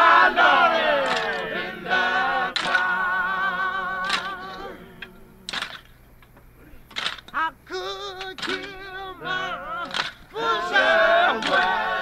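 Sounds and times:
men singing unaccompanied: 0.0s - 5.6s, 7.3s - 12.0s.

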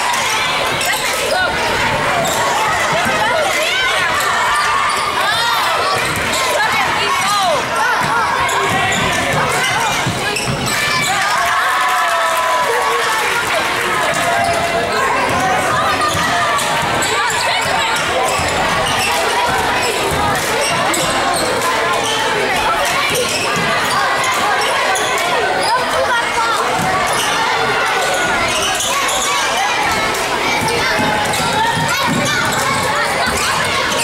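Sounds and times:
crowd chatter and shouting: 0.0s - 34.0s.

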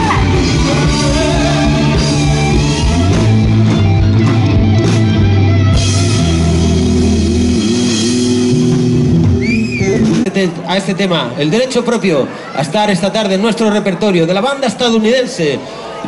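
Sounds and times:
drum kit: 0.0s - 10.4s
bass line: 0.0s - 10.6s
electric guitars: 0.0s - 11.0s.

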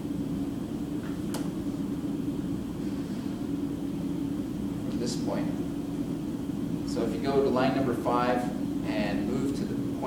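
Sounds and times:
fan-cooled machine humming: 0.0s - 10.0s.

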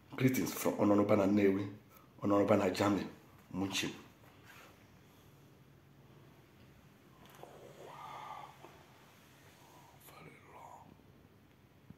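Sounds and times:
faint whisper-like voice: 7.2s - 11.0s.

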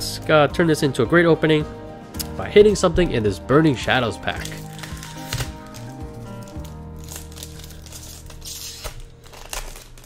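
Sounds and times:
background music: 0.0s - 10.0s
foil pack crinkling and tearing: 4.2s - 10.0s
hissing rip: 4.5s - 10.0s.

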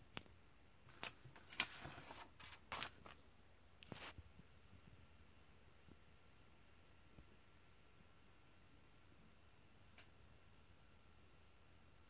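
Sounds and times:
comic book pages turning: 0.9s - 3.2s, 3.8s - 4.1s.

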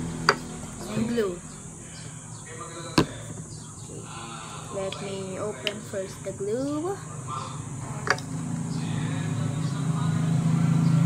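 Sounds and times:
hard object knocking: 3.0s - 3.4s.

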